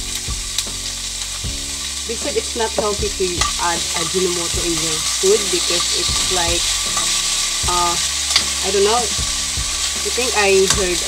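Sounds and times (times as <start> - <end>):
green beans sizzling in oil: 0.0 - 11.0.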